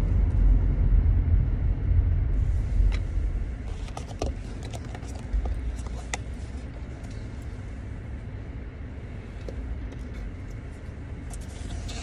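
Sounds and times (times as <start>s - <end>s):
car engine rumble from cabin: 0.0s - 12.0s.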